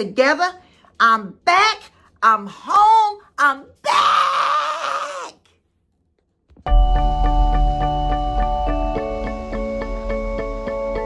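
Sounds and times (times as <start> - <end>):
woman shouting: 2.5 - 5.3.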